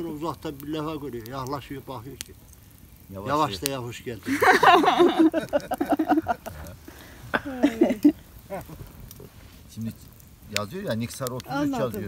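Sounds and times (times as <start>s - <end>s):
people laughing: 4.2s - 8.9s.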